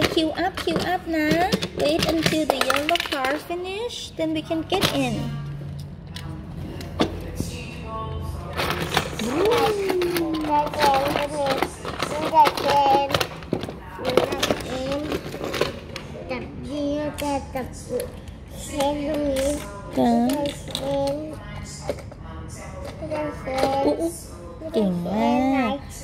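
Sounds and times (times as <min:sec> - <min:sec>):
toy cars clicking on plastic: 0:00.0 - 0:03.6, 0:08.7 - 0:16.0, 0:17.1 - 0:22.0
child talking in sing-song: 0:09.2 - 0:13.2, 0:16.2 - 0:21.4, 0:23.0 - 0:24.2, 0:24.9 - 0:26.0.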